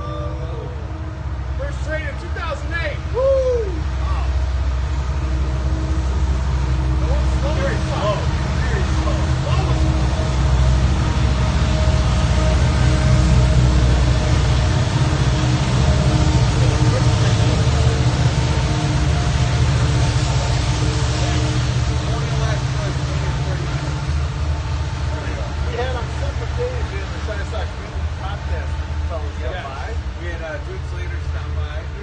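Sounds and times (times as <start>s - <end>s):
hot tub water churning: 0.1s - 31.2s
faint voices: 6.9s - 32.0s.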